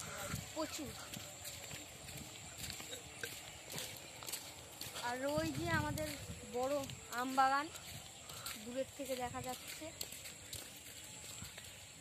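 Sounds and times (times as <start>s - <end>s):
footsteps on gravel: 0.0s - 12.0s.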